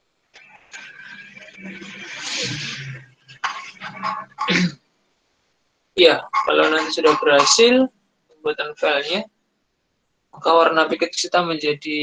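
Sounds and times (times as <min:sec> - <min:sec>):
man making voiced sounds: 0:00.7 - 0:04.7, 0:06.0 - 0:09.3, 0:10.4 - 0:12.0.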